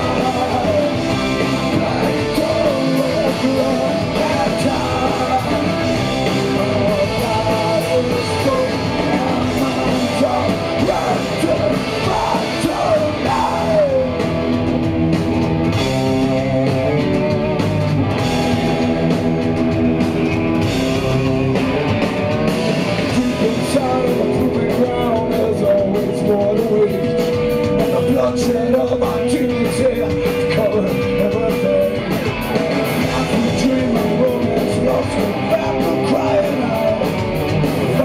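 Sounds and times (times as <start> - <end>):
man singing lead vocal: 0.0 - 14.4, 23.0 - 38.0
distorted electric guitars: 0.0 - 38.0
drums with crashing cymbals: 0.0 - 38.0.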